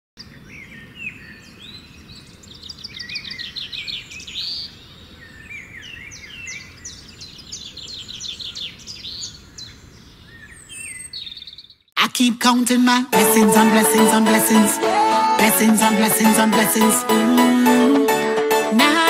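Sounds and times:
birds singing: 0.2 - 11.9.

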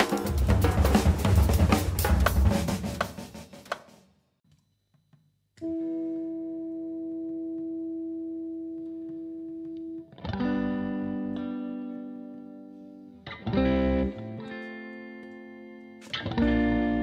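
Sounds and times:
electric guitar with effects: 5.6 - 17.0.

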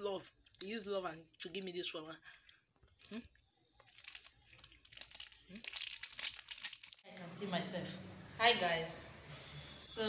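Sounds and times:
lettuce being chewed: 2.2 - 7.0.

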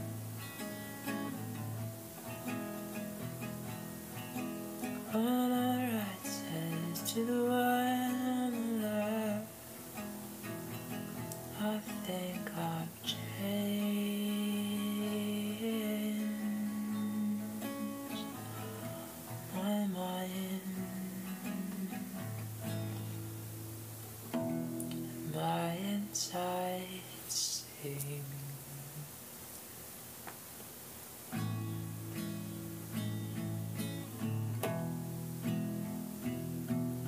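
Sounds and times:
acoustic guitar playing: 0.0 - 29.1, 31.2 - 37.0
person singing wordless notes: 5.0 - 9.6, 11.4 - 23.0, 24.7 - 29.2.

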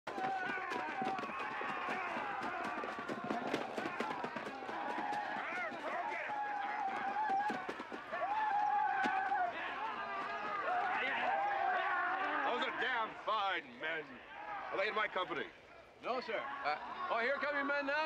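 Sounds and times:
running footsteps: 0.0 - 11.9
men yelling: 0.1 - 13.2.

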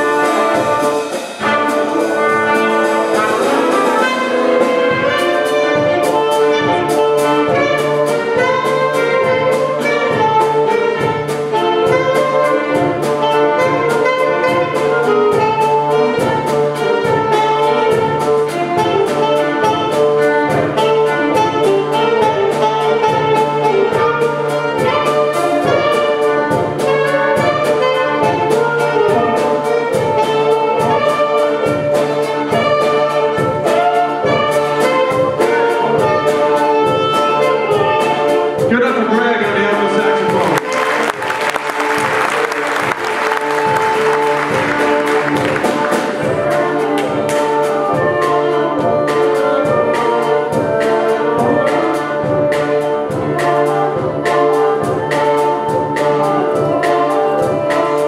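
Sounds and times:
jazz ensemble playing: 0.0 - 58.0
trumpet playing: 0.0 - 58.0.

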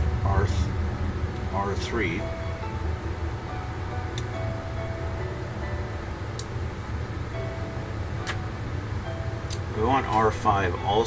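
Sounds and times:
faint background music: 0.0 - 11.0
steady low hum: 0.0 - 11.0.

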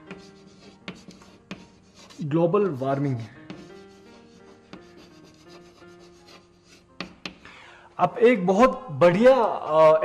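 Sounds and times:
chalk tapping: 0.0 - 2.4, 3.1 - 7.5
chalk scraping on chalkboard: 0.0 - 7.4.

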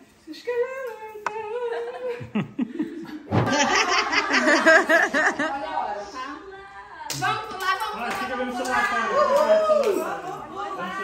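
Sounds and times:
group of people laughing: 1.7 - 6.2.

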